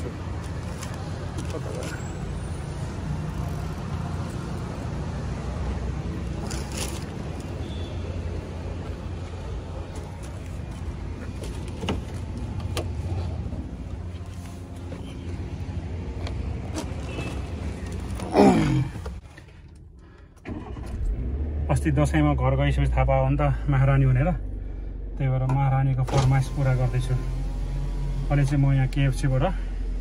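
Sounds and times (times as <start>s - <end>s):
vehicle engine and road noise: 0.0s - 30.0s.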